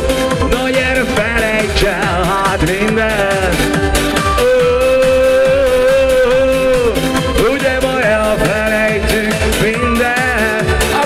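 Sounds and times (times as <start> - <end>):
keyboard: 0.0 - 11.0
steady electronic beat: 0.0 - 11.0
male singer: 0.1 - 11.0.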